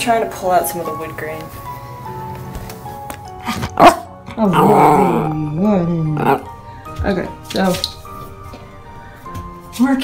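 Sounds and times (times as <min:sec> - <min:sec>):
spooky waltz music: 0:00.0 - 0:10.0
dog barking: 0:03.8 - 0:04.1.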